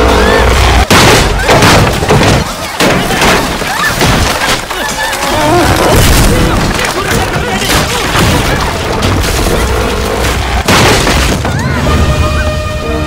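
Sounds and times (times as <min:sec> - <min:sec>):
crowd shouting: 0:00.0 - 0:09.0
sharp crashes: 0:00.0 - 0:12.1
music: 0:11.5 - 0:13.0.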